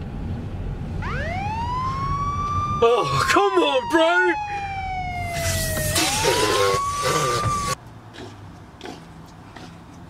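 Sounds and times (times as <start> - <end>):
car rumble: 0.0 - 10.0
police siren wailing: 1.0 - 7.8.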